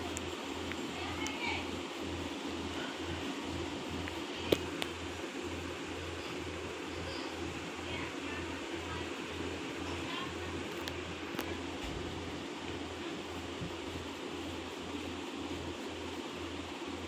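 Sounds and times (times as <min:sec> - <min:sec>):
room hiss: 0:00.0 - 0:17.0.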